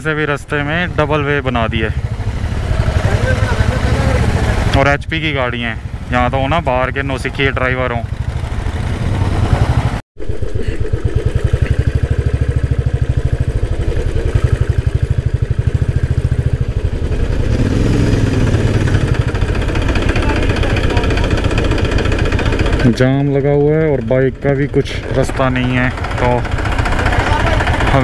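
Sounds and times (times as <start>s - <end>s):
motorcycle engine running: 0.0s - 28.0s.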